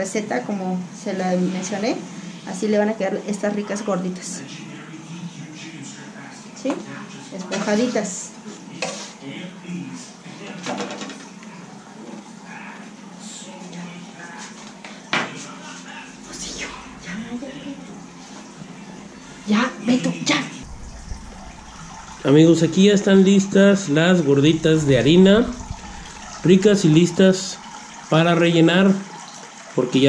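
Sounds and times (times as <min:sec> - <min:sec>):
dishes and utensils clattering: 0:10.6 - 0:11.4
voices talking: 0:15.3 - 0:29.2.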